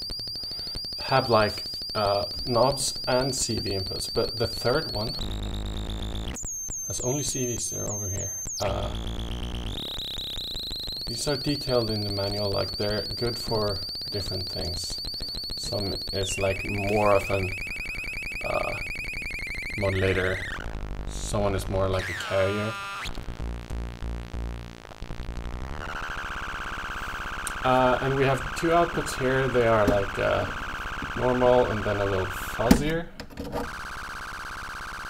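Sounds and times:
steady high-pitched tone: 0:00.0 - 0:24.8, 0:25.6 - 0:32.6
synthesizer buzzing pulse: 0:00.0 - 0:32.6
high whistling tone: 0:11.0 - 0:20.6
gritty synthesizer drone: 0:19.8 - 0:31.9.

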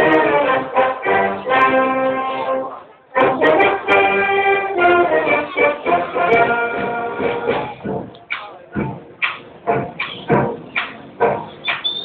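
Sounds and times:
wind band playing: 0:00.0 - 0:08.1, 0:08.8 - 0:12.0
accented chords: 0:00.0 - 0:12.0.

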